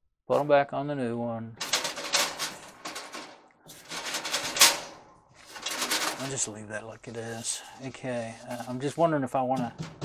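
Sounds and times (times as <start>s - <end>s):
sheet metal clicking and clattering: 1.6s - 6.5s, 9.6s - 10.0s.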